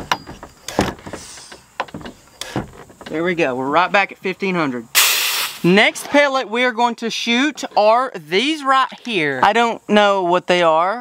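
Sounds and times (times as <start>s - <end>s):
air hissing: 0.6s - 3.0s, 4.9s - 5.9s.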